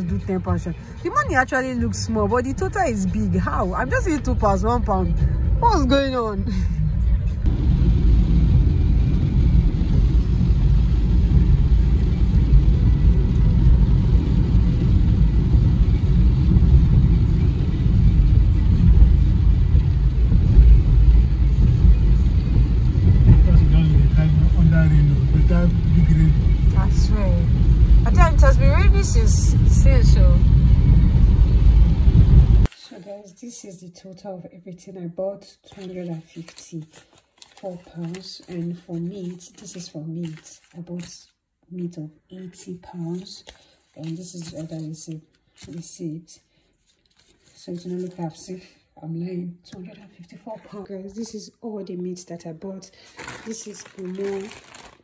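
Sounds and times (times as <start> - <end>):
car engine and tyre rumble: 0.0 - 32.7.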